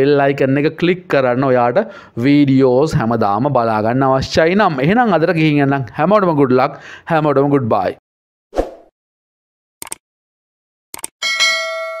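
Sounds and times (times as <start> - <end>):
quick clicks: 9.8 - 10.0, 10.9 - 11.2
bright bell ding: 11.2 - 12.0.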